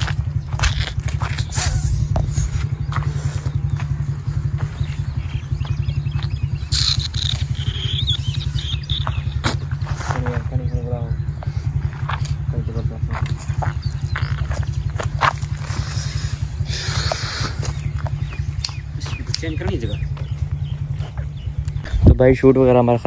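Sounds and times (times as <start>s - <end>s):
engine running steadily: 0.0s - 23.0s
high chirping sound: 4.4s - 9.8s.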